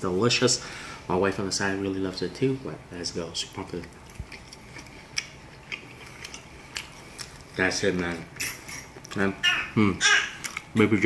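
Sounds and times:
person chewing: 0:03.8 - 0:09.3, 0:10.2 - 0:10.8.

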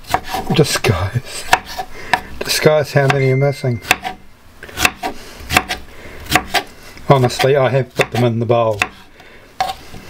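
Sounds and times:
knife chopping on wooden board: 0:00.1 - 0:00.5, 0:01.5 - 0:02.2, 0:03.8 - 0:04.2, 0:04.8 - 0:09.0.

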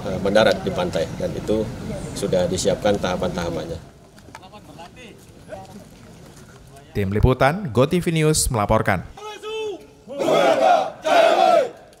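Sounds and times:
group shouting in unison: 0:09.2 - 0:11.8.

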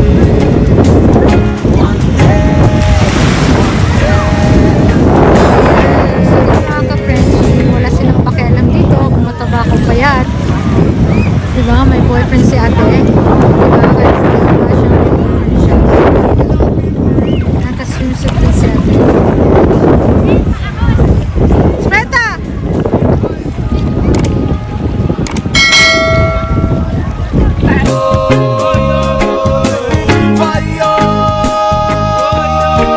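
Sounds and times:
sea water: 0:00.0 - 0:30.0
wind buffeting microphone: 0:00.0 - 0:30.1
small waves breaking: 0:02.7 - 0:05.0
bright bell ding: 0:25.6 - 0:27.0.

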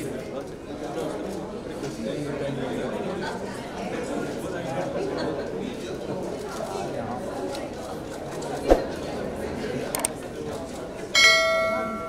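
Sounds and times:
bright bell ding: 0:11.2 - 0:12.0.

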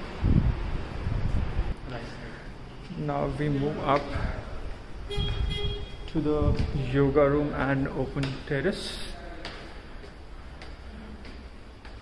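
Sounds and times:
short horn-like tone: 0:05.1 - 0:06.1
footsteps on stone stairs: 0:08.1 - 0:12.0.

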